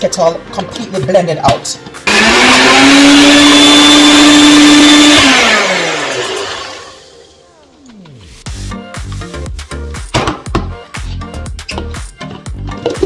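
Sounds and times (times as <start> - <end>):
blender motor running: 2.0 - 7.1.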